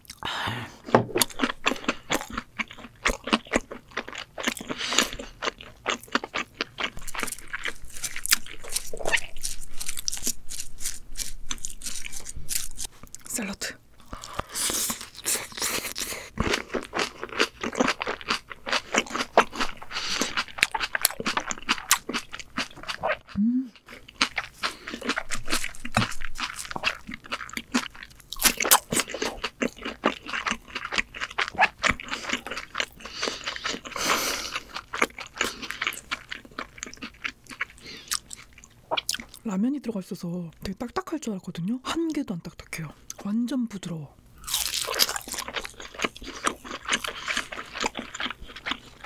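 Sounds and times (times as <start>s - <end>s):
crunchy chewing of salad: 1.1s - 13.3s, 14.0s - 39.5s, 44.4s - 49.0s.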